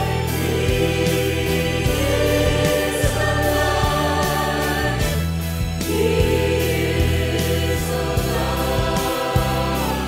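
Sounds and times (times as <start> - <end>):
backing track with steady beat: 0.0 - 10.0
choir singing in harmony: 0.0 - 10.0.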